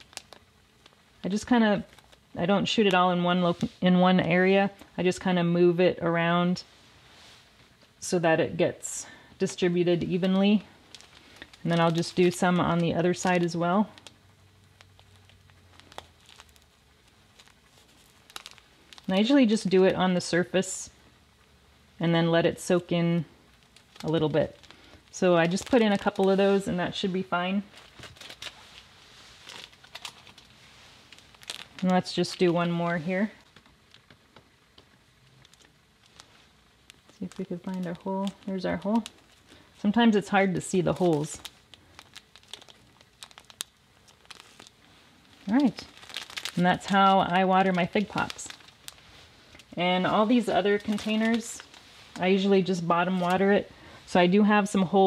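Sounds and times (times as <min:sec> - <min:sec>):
small sharp crackles: 0:00.0 - 0:03.8, 0:09.0 - 0:19.7, 0:22.6 - 0:54.2
plastic bag crinkling: 0:00.0 - 0:05.4, 0:06.2 - 0:20.6, 0:22.4 - 0:55.0.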